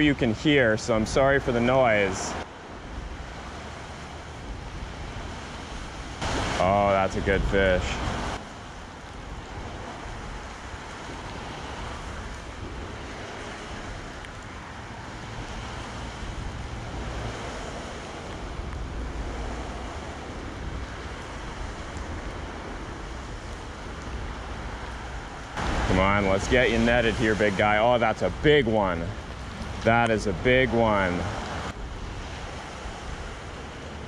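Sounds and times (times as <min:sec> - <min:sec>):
traffic rushing on bridge: 0:00.0 - 0:34.0
creek running over shallows: 0:01.2 - 0:34.0.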